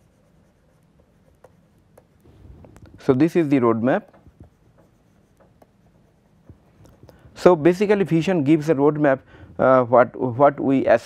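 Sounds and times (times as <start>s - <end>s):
pen writing by hand: 0.0s - 7.3s.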